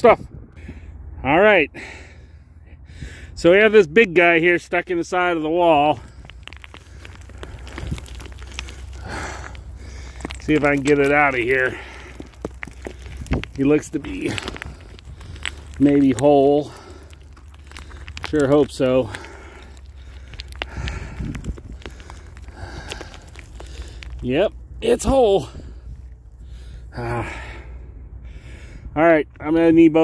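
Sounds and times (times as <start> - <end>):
low steady rumble: 0.0 - 30.0
dirt and pebbles crackling: 3.4 - 27.8
hand scraping soil: 4.6 - 26.7.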